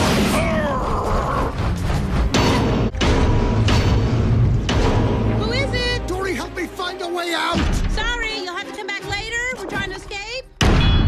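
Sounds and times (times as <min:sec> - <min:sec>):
tense orchestral chase music: 0:00.0 - 0:10.5.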